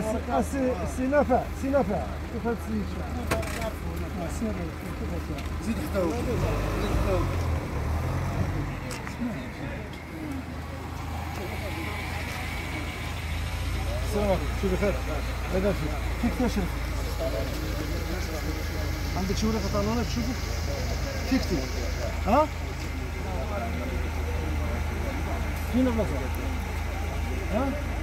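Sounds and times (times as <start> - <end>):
car engines idling: 0.0 - 28.0
people talking: 0.0 - 28.0.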